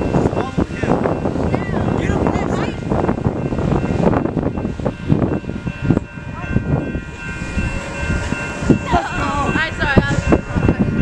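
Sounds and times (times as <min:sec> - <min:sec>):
train high tones: 0:00.0 - 0:11.0
wind noise on microphone: 0:00.0 - 0:11.0.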